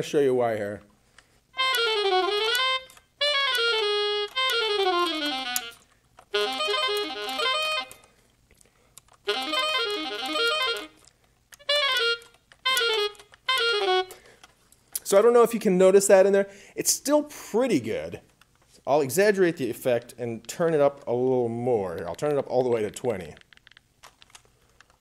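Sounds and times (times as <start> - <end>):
electronic saxophone scale runs: 1.6 - 8.0, 9.3 - 11.0, 11.6 - 14.2.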